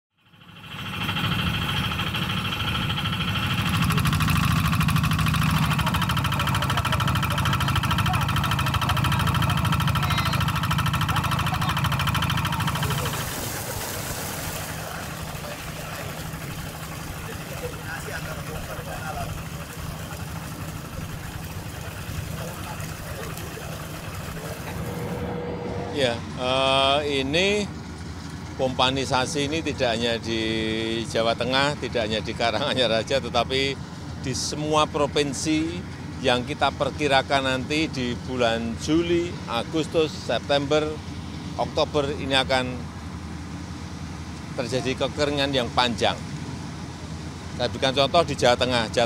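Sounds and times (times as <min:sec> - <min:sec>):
water pump engine running: 0:00.2 - 0:49.0
water gushing from pipe: 0:03.4 - 0:25.0.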